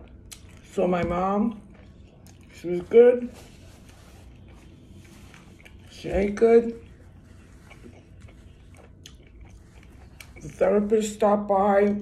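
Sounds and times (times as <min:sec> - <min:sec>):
person chewing food: 0:00.0 - 0:00.8, 0:01.5 - 0:10.9.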